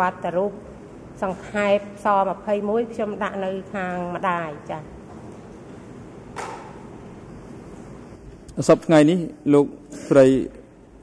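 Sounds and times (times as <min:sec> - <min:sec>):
microphone hiss: 0:00.0 - 0:11.0.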